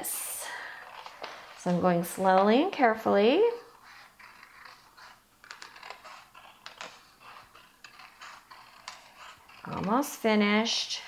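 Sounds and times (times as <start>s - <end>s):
paper rustling: 0.7s - 2.4s, 3.8s - 10.0s
scissors snipping paper: 3.8s - 10.4s.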